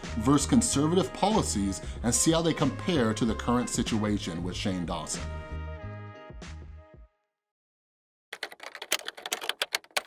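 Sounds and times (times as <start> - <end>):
typewriter key strikes: 8.4 - 10.0.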